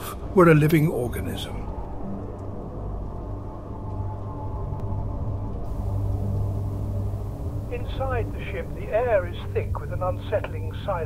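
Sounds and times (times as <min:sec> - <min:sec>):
low rumbling drone: 0:01.0 - 0:11.0.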